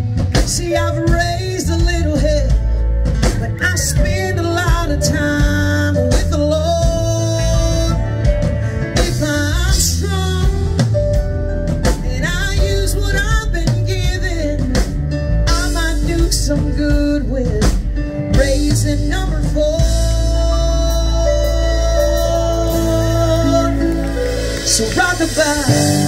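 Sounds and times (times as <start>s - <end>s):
drum kit: 0.0s - 26.0s
electric guitar: 0.0s - 26.0s.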